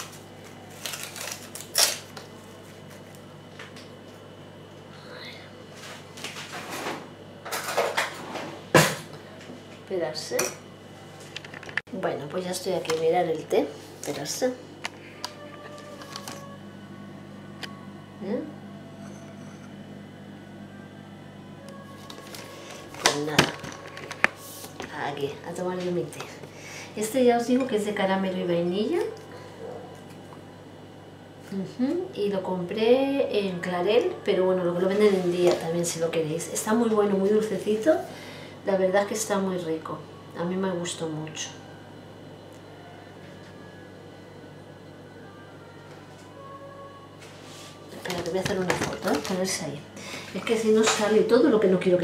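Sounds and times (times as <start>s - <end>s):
low room hum: 0.0s - 52.0s.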